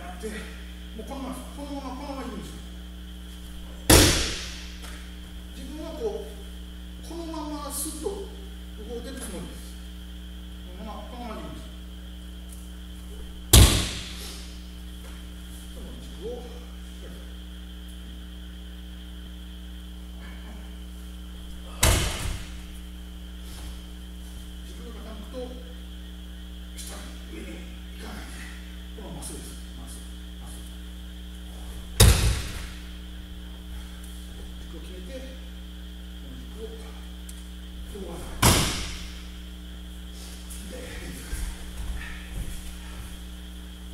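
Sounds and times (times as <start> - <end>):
electrical hum: 0.0 - 43.9
body falling onto mat thud: 3.6 - 5.1, 13.4 - 14.2, 21.6 - 22.8, 31.8 - 33.0, 38.2 - 39.4
body thudding onto mats: 21.5 - 22.8, 31.8 - 33.0.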